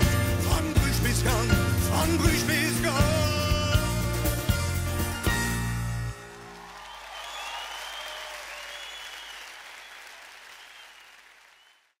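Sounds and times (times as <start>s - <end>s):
audience applauding: 5.7s - 12.0s
high whistles: 6.6s - 12.0s.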